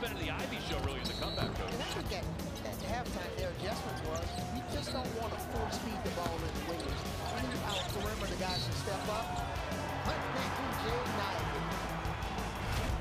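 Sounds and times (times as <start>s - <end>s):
players calling out: 0.1s - 12.6s
sneakers squeaking: 0.4s - 11.5s.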